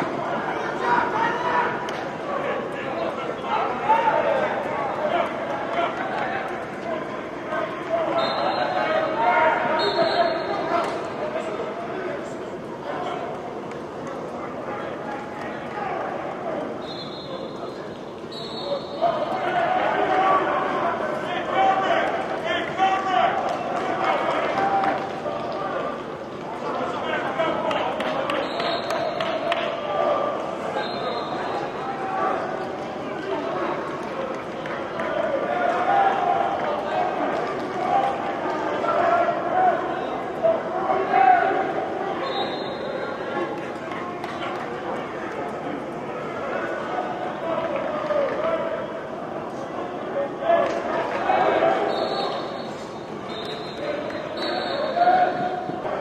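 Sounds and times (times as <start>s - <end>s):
men shouting and talking: 0.0s - 13.6s, 14.2s - 56.0s.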